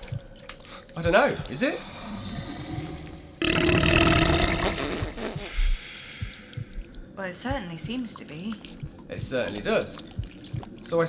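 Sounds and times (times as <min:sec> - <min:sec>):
deep guttural creature groan: 0:01.9 - 0:04.8.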